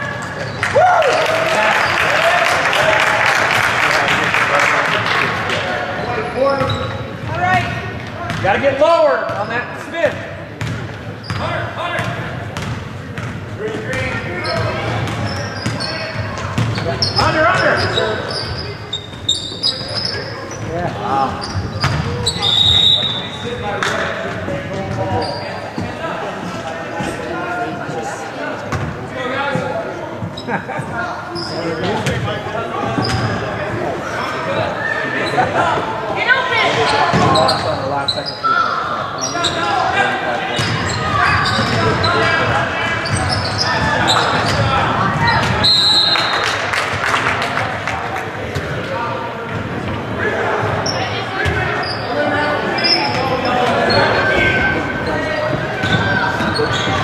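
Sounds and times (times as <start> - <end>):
echoing voices: 0.0 - 57.0
shoe squeaks and knocks: 14.4 - 23.4, 33.0 - 33.3, 40.6 - 42.4, 43.0 - 44.6, 50.8 - 57.0.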